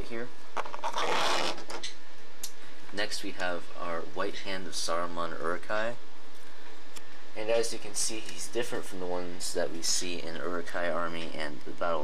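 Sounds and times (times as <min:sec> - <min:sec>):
rubbing scrape: 0:00.6 - 0:01.9.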